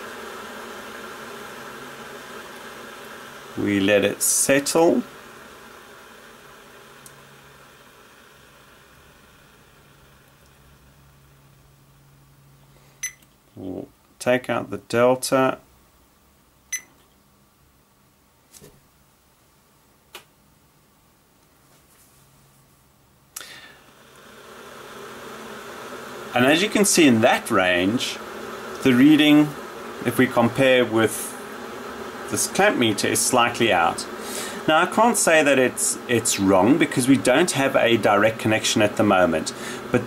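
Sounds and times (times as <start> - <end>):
electric kettle water hiss: 0.0 - 13.0, 23.3 - 40.0.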